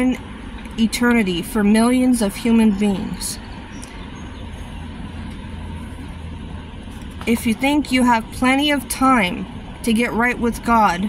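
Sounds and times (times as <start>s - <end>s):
car engine rumble inside cabin: 0.0s - 11.0s.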